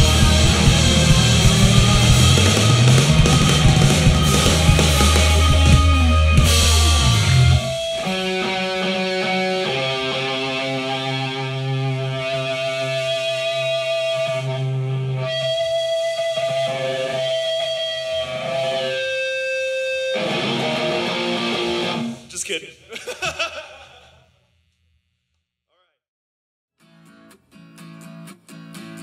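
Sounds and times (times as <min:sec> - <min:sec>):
electric guitar ringing notes: 0:00.0 - 0:22.3
rock band playing: 0:00.0 - 0:22.3.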